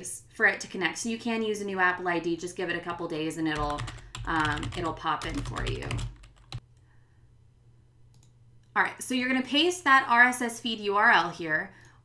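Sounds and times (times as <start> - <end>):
computer keyboard clicks: 3.6 - 6.6.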